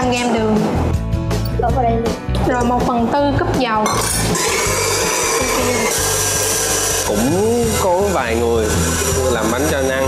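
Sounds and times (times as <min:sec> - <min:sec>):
background music: 0:00.0 - 0:10.0
whisk beating in metal bowl: 0:04.3 - 0:10.0.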